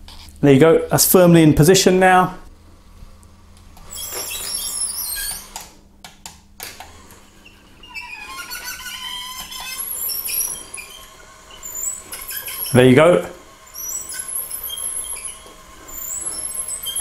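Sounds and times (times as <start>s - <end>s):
blind motor high whine: 6.6s - 17.0s.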